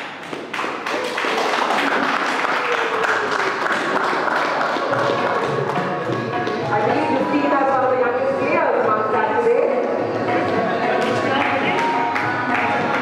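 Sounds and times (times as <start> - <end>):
audience applauding: 0.0 - 6.3.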